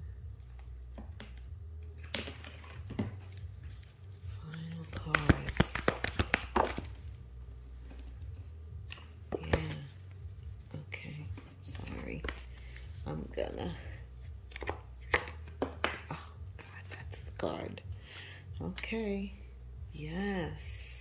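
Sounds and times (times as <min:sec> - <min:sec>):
steady low hum: 0:00.0 - 0:21.0
cards being shuffled: 0:00.3 - 0:07.2, 0:07.9 - 0:17.0.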